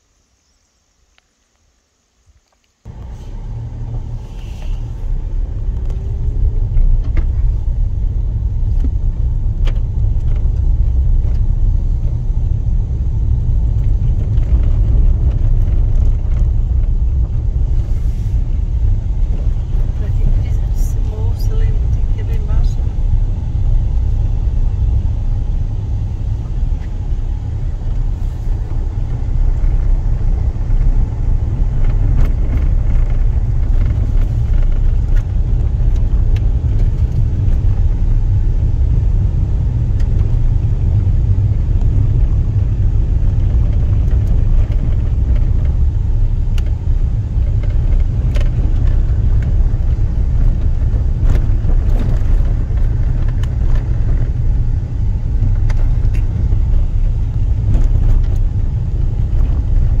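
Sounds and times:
car rumbling on dirt road: 2.8 - 60.0.

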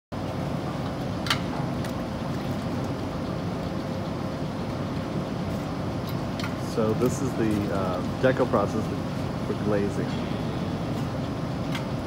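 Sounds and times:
factory machinery rumble: 0.2 - 12.0.

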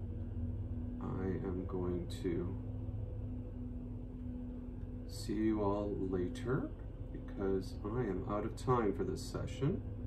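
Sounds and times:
low room rumble: 0.0 - 10.0
low-pitched hum: 0.0 - 10.0.

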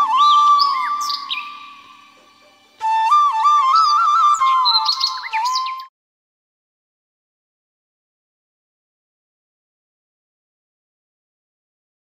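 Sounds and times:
bird chirps: 0.0 - 5.9
flute music: 0.0 - 5.9.

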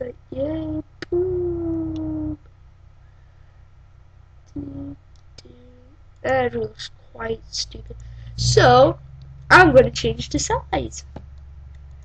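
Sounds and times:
person howling vowel: 0.7 - 2.4.

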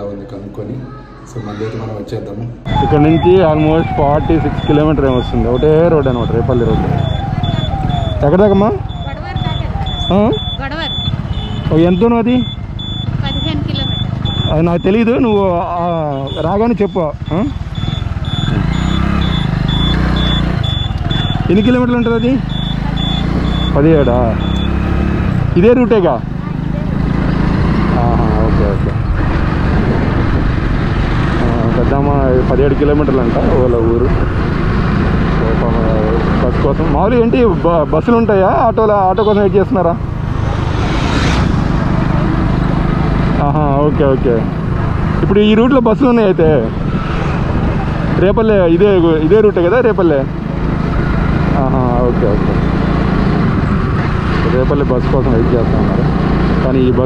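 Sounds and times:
road noise: 0.0 - 57.0
motorcycle engine cruising: 2.7 - 57.0
short high electronic beeps: 9.8 - 15.2, 16.1 - 24.9
small motorbike engine running: 17.2 - 25.4
wind noise on microphone: 28.8 - 31.5.

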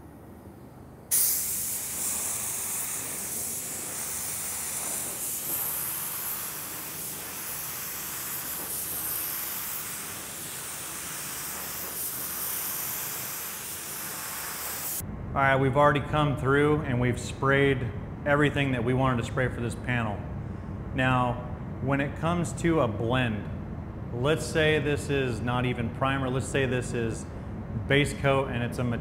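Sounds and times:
spray gun hissing: 1.1 - 15.0.

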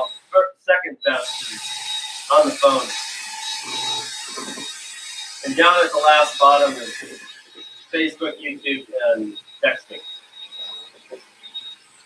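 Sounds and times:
cordless drill whirring: 1.1 - 12.0.

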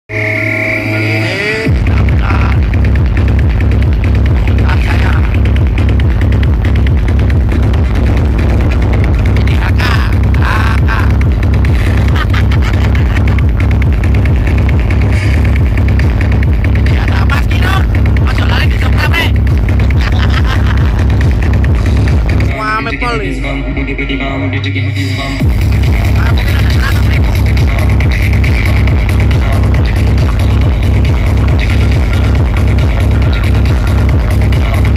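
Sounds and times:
bass-heavy electronic music: 0.1 - 34.9.

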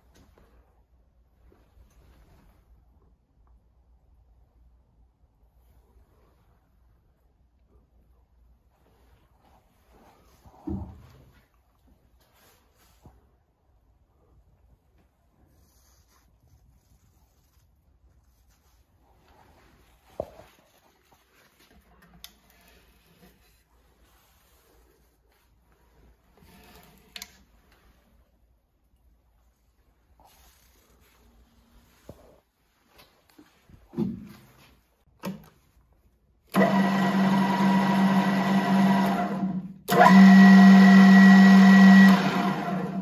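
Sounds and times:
drill press motor hum with gear whine: 36.6 - 43.0.

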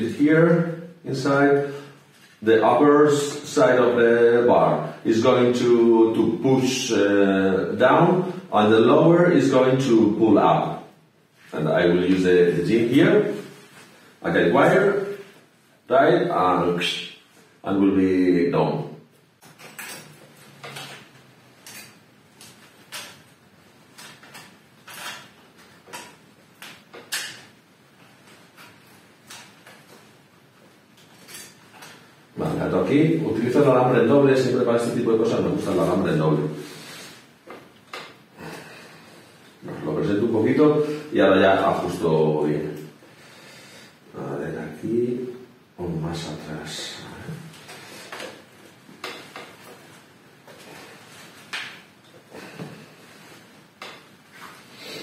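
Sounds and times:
metal wire clicking and scraping: 19.4 - 23.3, 23.9 - 27.5, 31.0 - 32.0.

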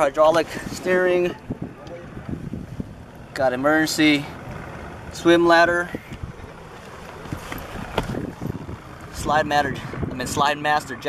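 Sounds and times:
wind buffeting microphone: 0.0 - 3.4, 4.4 - 11.0.

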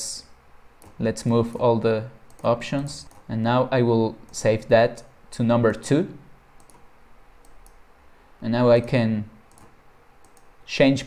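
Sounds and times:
computer mouse clicks: 0.8 - 1.0, 2.3 - 3.3, 6.6 - 7.8, 8.8 - 10.5.

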